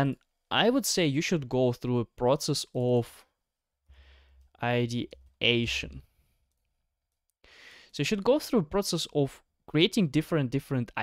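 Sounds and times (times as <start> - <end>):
person speaking: 0.0 - 3.3, 4.5 - 6.2, 7.9 - 11.0.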